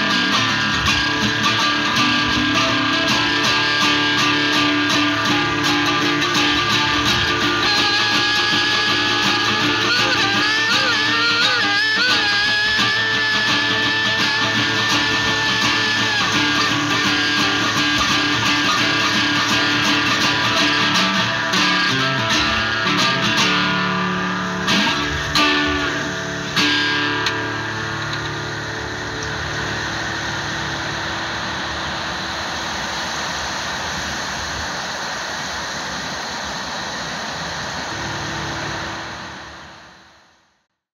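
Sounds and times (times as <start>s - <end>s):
acoustic guitar playing: 0.0s - 35.3s, 37.5s - 40.3s
steady hiss: 0.0s - 40.6s.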